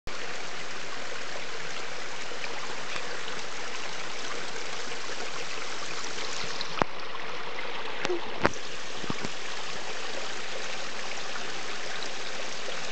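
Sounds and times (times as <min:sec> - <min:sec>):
waterfall over rocks: 0:00.1 - 0:12.9.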